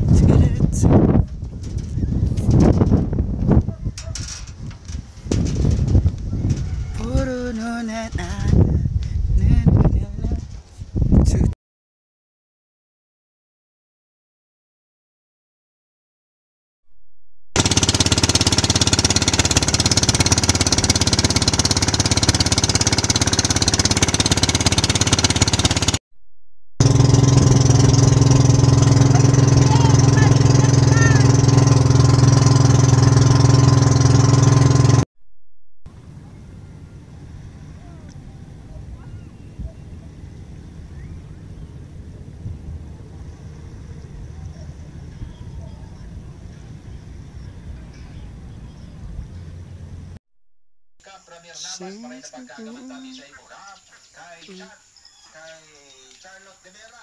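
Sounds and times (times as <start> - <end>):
wind buffeting microphone: 0.0 - 11.6, 36.0 - 50.2
boat engine deep hum: 17.6 - 26.0, 26.8 - 35.0, 35.9 - 50.2
boat engine pulsing: 17.6 - 26.0, 26.8 - 35.0.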